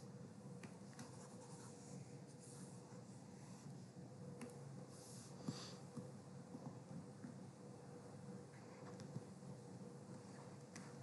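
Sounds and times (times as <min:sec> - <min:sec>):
faint steady hum: 0:00.0 - 0:11.0
stylus scratching on tablet screen: 0:00.7 - 0:03.8.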